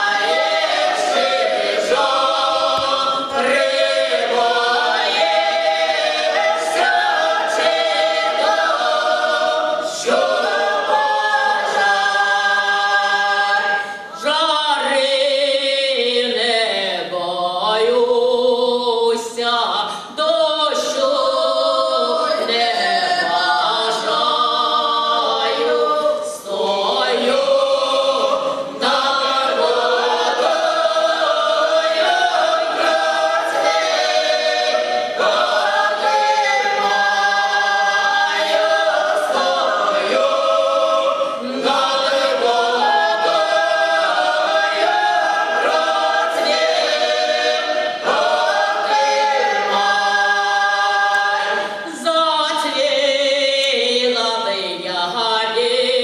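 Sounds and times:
vocal ensemble singing in harmony: 0.0s - 56.0s.

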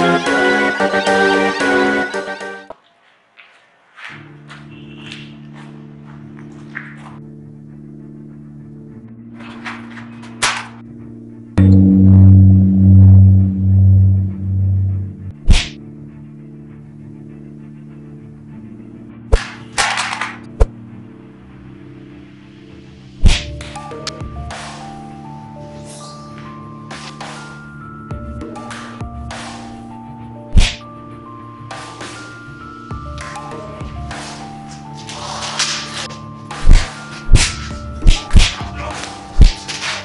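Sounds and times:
low background music: 0.0s - 40.0s
sharp hit: 11.6s - 15.8s
whooshing swish: 12.2s - 15.8s
punch swish and thud: 15.4s - 15.8s, 23.2s - 23.5s, 30.6s - 30.8s, 36.6s - 38.6s, 39.4s - 39.6s.

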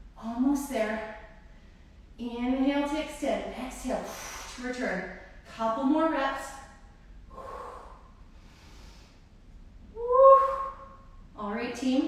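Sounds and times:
voiced exhale: 7.3s - 9.2s
woman breathing with effort: 7.3s - 9.4s.

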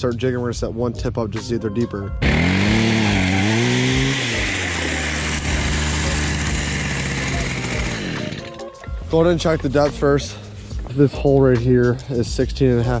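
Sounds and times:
power ice auger drilling: 2.2s - 8.8s.

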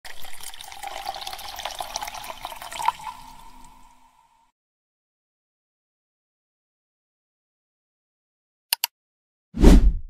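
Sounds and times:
water splashing and trickling: 0.1s - 4.2s.

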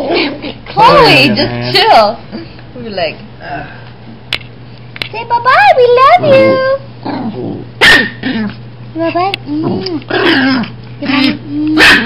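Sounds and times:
dogs growling: 0.0s - 2.4s, 6.2s - 12.0s
dog barking sharply: 7.8s - 8.4s, 11.8s - 12.0s.

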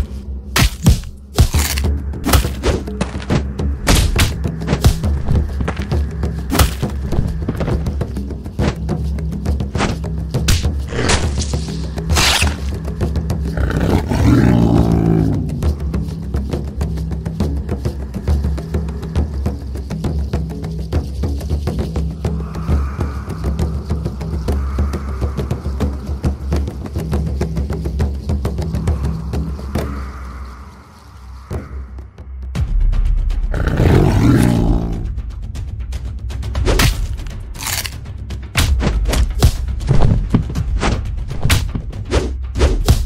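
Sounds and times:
dramatic music with drum hits: 0.0s - 30.5s, 31.3s - 43.0s
big cat roar: 13.4s - 15.7s, 33.5s - 35.1s.

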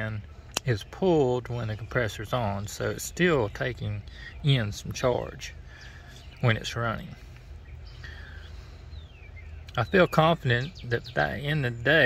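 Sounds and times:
low steady hum: 0.0s - 12.0s
faint bird calls: 0.2s - 12.0s.

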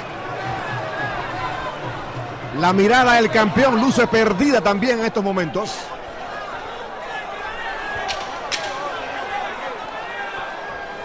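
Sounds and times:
crowd voices and shouting: 0.0s - 11.0s.

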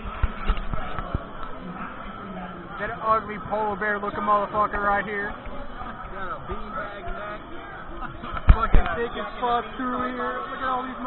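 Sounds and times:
restaurant background chatter: 0.0s - 11.0s
man's voice close to microphone: 2.8s - 5.4s.

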